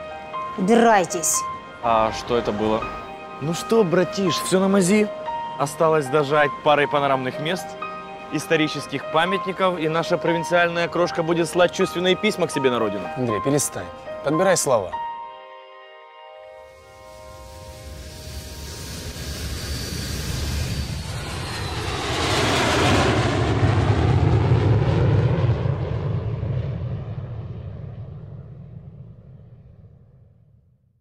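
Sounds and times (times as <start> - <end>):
airplane flying past: 0.2 - 11.3, 16.6 - 30.1.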